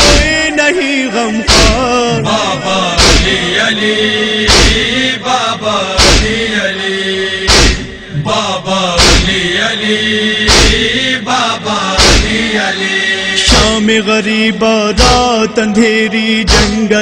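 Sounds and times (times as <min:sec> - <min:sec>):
man chanting a lament: 0:00.0 - 0:07.4, 0:08.1 - 0:17.0
heavy beat: 0:01.5 - 0:03.6, 0:04.5 - 0:04.9, 0:06.0 - 0:06.4, 0:07.5 - 0:08.0, 0:09.0 - 0:09.5, 0:10.5 - 0:10.9, 0:12.0 - 0:12.5, 0:13.4 - 0:13.8, 0:15.0 - 0:15.4, 0:16.5 - 0:16.9.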